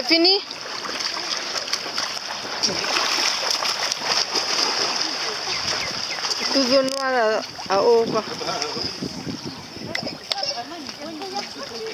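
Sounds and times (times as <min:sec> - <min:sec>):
wind on microphone: 0:04.0 - 0:11.9.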